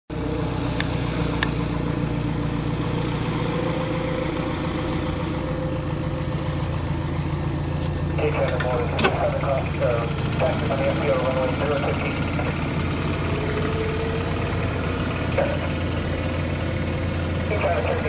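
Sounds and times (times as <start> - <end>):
low engine hum: 0.1 - 18.0.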